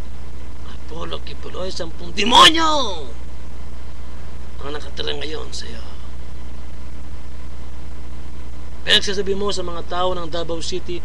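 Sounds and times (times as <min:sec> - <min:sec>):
low room hum: 0:00.0 - 0:11.0
man talking: 0:00.7 - 0:03.2, 0:04.6 - 0:06.1, 0:08.9 - 0:11.0.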